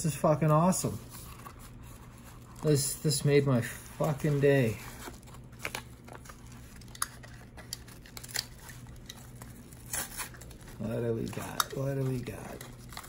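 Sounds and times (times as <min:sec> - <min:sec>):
packaging crinkling: 0:01.1 - 0:13.0
packaging tearing: 0:04.0 - 0:13.0.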